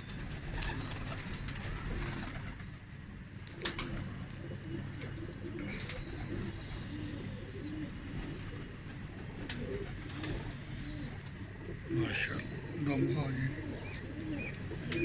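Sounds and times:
pigeons cooing: 0.0s - 15.0s.

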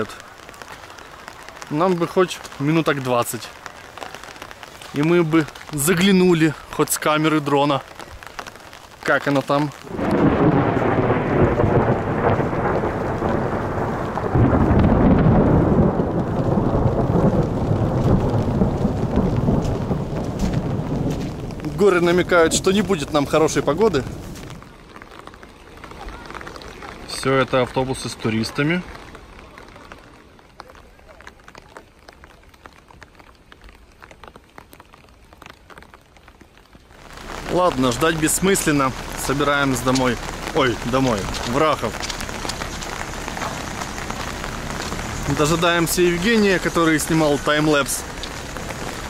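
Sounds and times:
thunder rumbling: 0.0s - 30.0s, 37.0s - 49.0s
steady rain: 0.0s - 49.0s.

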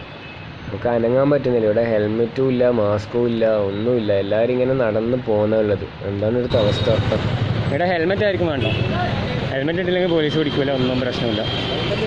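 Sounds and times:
motorcycle and scooter engines: 6.4s - 12.0s.

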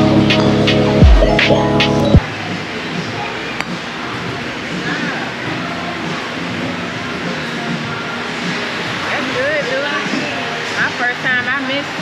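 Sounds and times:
music: 0.0s - 12.0s
indistinct chatter of voices: 2.2s - 12.0s.

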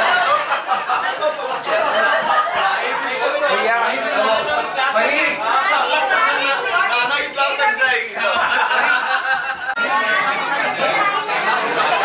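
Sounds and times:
babble of conversation: 0.0s - 12.0s.

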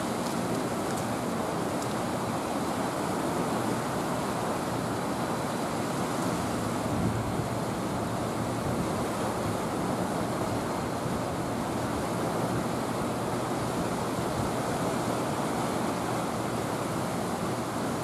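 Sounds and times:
water rushing below a dam: 0.0s - 18.0s.

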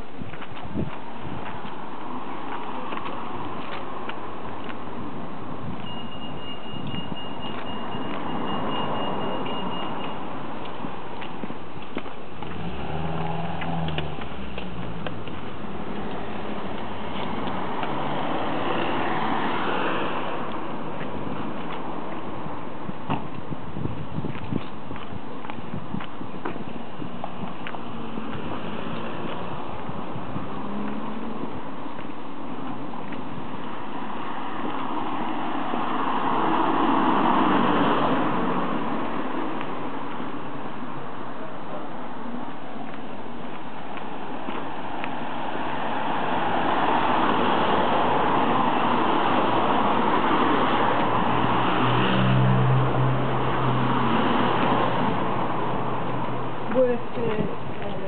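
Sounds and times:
cars passing on road: 0.0s - 58.0s
low engine hum: 10.4s - 47.0s.

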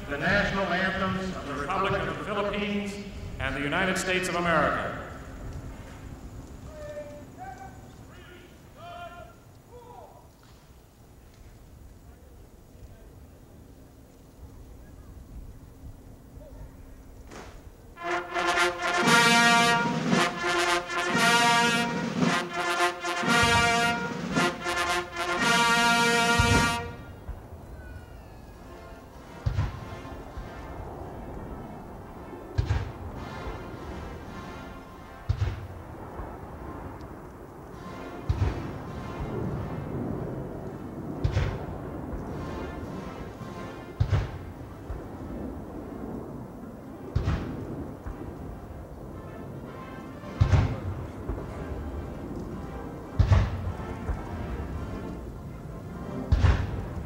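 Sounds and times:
military band playing anthem: 0.0s - 9.8s, 17.3s - 57.0s
cannon booms: 18.9s - 27.4s, 29.2s - 30.7s, 32.5s - 34.6s, 35.2s - 37.1s, 37.8s - 48.7s, 50.4s - 52.0s, 53.2s - 54.8s, 56.3s - 57.0s.

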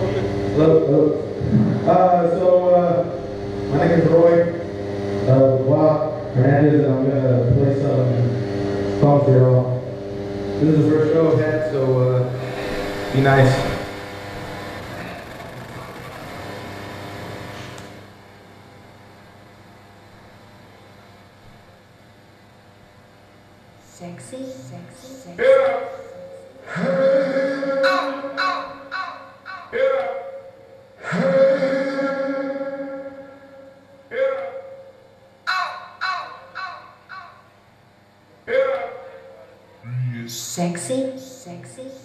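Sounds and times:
electronic drone of held tones: 0.0s - 18.3s, 23.8s - 37.6s, 38.6s - 42.0s
quiet hum: 0.0s - 42.0s.

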